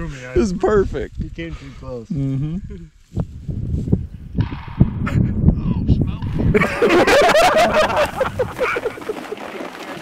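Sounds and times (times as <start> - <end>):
wind buffeting microphone: 0.0 - 2.0, 2.6 - 9.3.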